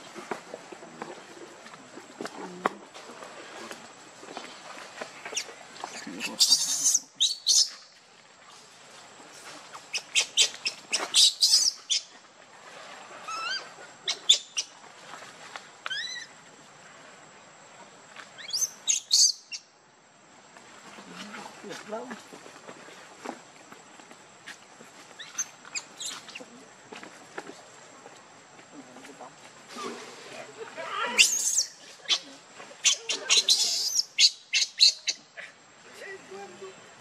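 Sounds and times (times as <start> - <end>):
baby monkey squeaky cries: 6.3 - 7.7, 11.2 - 11.8, 15.9 - 16.2, 31.1 - 32.2, 32.8 - 35.2.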